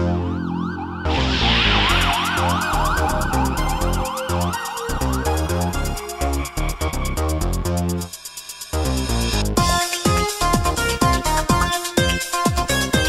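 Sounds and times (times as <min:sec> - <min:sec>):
siren-like synth wail: 0:00.0 - 0:06.7
pulsing synth bass: 0:00.0 - 0:08.1, 0:08.7 - 0:13.0
electronic dance music: 0:01.0 - 0:13.0
fast hi-hat pattern: 0:01.3 - 0:13.0.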